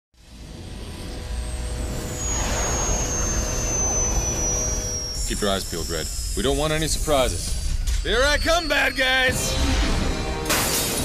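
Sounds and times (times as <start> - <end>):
high whine falling in pitch: 0.2 - 10.2.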